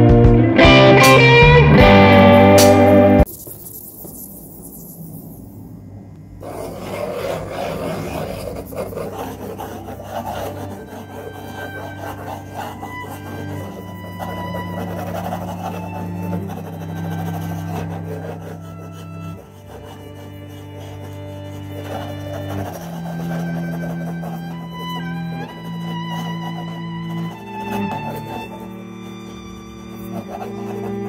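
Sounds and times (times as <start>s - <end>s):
background music with low notes: 0.0s - 3.3s
pencil scratching on paper: 6.4s - 31.0s.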